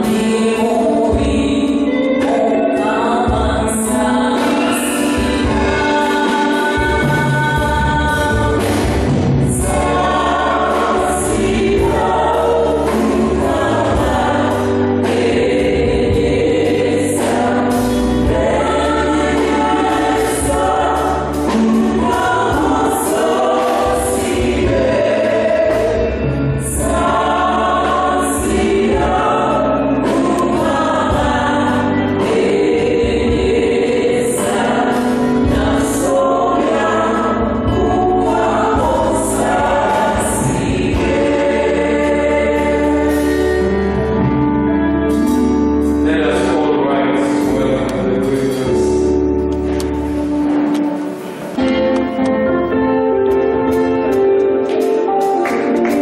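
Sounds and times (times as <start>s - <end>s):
choir singing a hymn: 0.0s - 56.0s
instrumental accompaniment: 0.0s - 56.0s.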